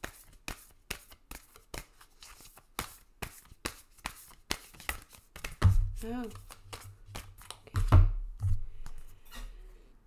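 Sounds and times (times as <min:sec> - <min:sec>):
cards rustling: 0:00.0 - 0:07.7
cards slapping: 0:00.0 - 0:08.0.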